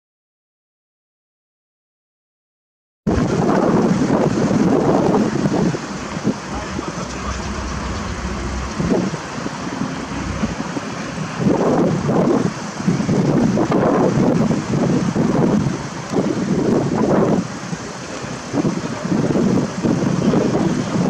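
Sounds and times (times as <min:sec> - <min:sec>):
wind buffeting microphone: 0:03.1 - 0:21.0
cars driving past: 0:05.8 - 0:11.6.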